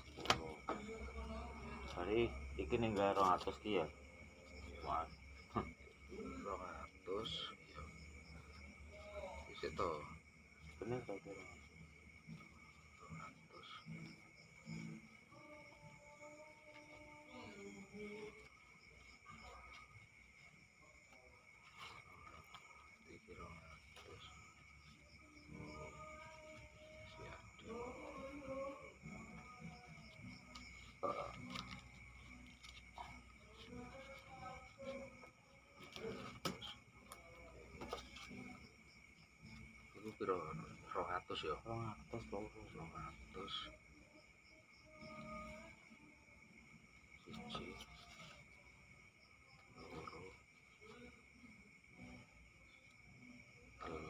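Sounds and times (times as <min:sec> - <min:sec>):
crickets chirring: 0:00.0 - 0:54.0.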